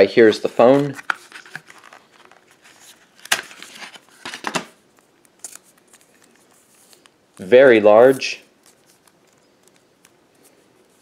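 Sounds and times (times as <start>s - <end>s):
packaging scraping rustles: 0.5s - 4.7s, 8.0s - 11.0s.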